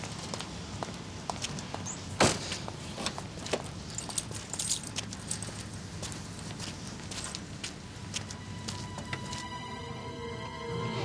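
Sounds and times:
footsteps on concrete floor: 0:00.2 - 0:09.6.

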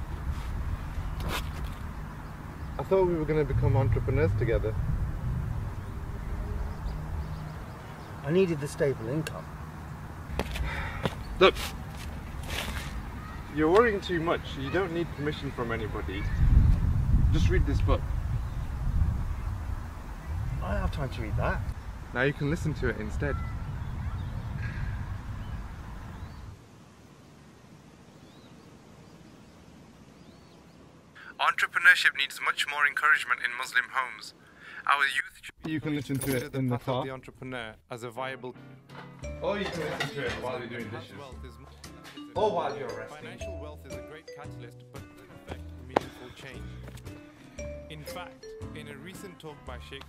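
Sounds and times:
wind noise on microphone: 0:00.0 - 0:07.8, 0:15.8 - 0:26.6
low rumble outdoors: 0:00.0 - 0:31.2
small birds chirping: 0:00.9 - 0:03.3, 0:05.5 - 0:12.0, 0:18.1 - 0:26.6, 0:27.5 - 0:31.3.

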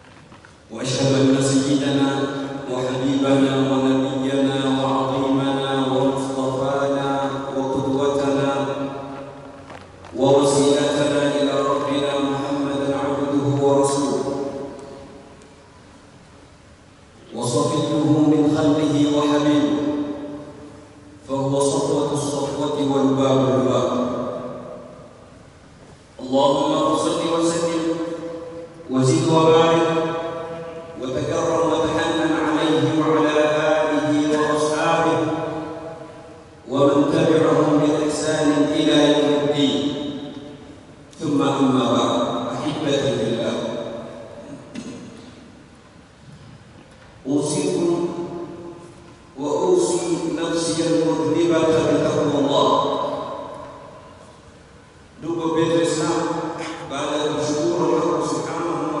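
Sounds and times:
man chanting through a microphone: 0:00.7 - 0:09.4, 0:10.0 - 0:15.0, 0:17.2 - 0:25.0, 0:26.2 - 0:40.4, 0:47.2 - 0:48.8, 0:49.4 - 0:53.7, 0:55.2 - 0:59.0.

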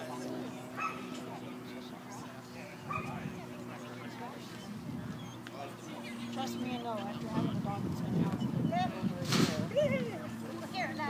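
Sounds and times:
people's voices in background: 0:00.0 - 0:11.0
dog yipping: 0:00.8 - 0:01.1, 0:02.9 - 0:03.2.

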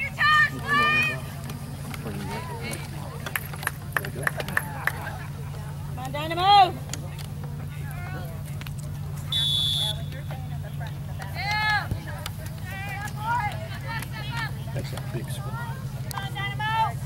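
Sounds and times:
low steady hum: 0:00.0 - 0:17.0
referee's whistle blast: 0:09.3 - 0:10.2.

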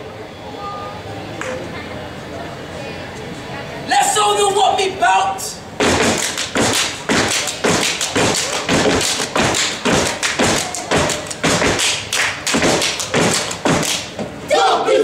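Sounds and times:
hand claps: 0:05.8 - 0:14.2
rhythmic stomps on a stage: 0:05.8 - 0:14.4
voices chanting: 0:14.4 - 0:15.0.

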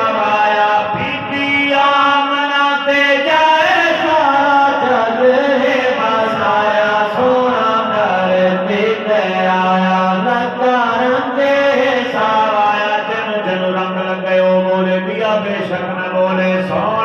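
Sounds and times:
men chanting through microphones: 0:00.0 - 0:17.0.

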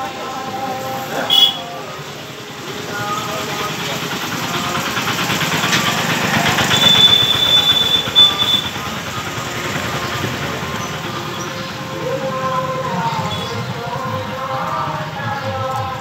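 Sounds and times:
crowd chatter: 0:00.0 - 0:16.0
motorcycle traffic: 0:00.0 - 0:16.0
high steady tone: 0:01.3 - 0:01.8.

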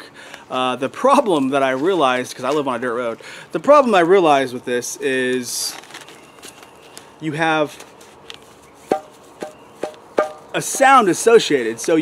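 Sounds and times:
steel plates clacking together: 0:09.8 - 0:11.2.

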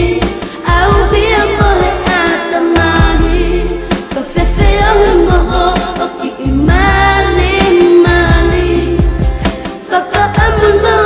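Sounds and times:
steady bass line: 0:00.0 - 0:02.2, 0:02.8 - 0:11.0
solo voice singing pop song: 0:00.0 - 0:11.0.

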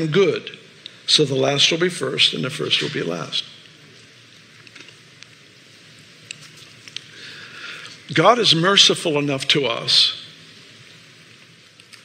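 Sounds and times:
man speaking: 0:00.0 - 0:03.6, 0:08.1 - 0:10.3
faint steady hiss: 0:00.0 - 0:12.0.

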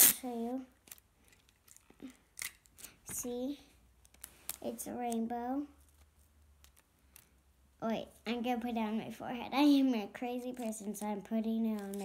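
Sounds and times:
hands handling toy and tape: 0:00.8 - 0:03.3, 0:04.0 - 0:07.4, 0:10.5 - 0:12.0.

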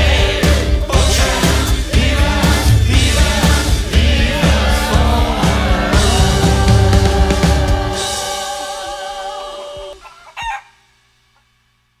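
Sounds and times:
chicken squawk: 0:09.0 - 0:11.0.

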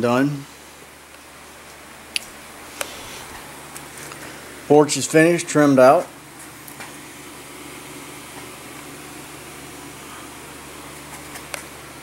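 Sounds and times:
low mechanical hum with hiss: 0:00.0 - 0:12.0.

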